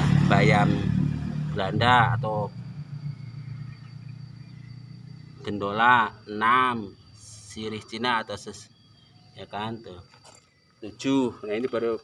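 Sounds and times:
engine humming: 0.0s - 9.9s.

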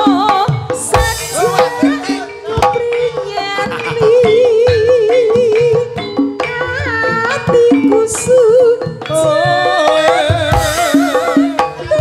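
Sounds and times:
gamelan instruments struck with mallets: 0.0s - 12.0s.

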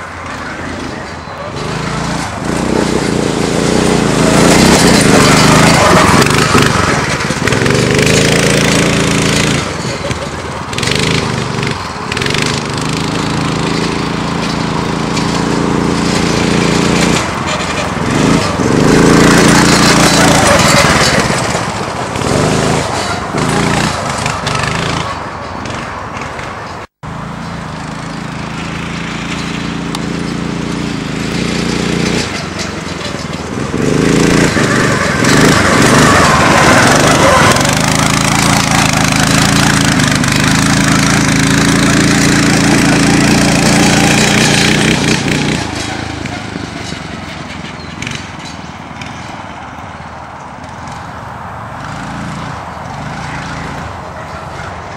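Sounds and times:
go-kart engine revving: 0.0s - 54.9s.

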